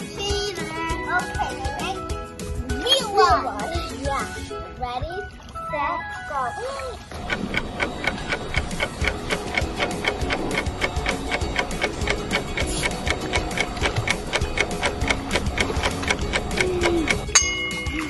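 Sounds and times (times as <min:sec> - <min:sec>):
background music: 0:00.0 - 0:18.0
clock ticking rapidly: 0:06.7 - 0:18.0.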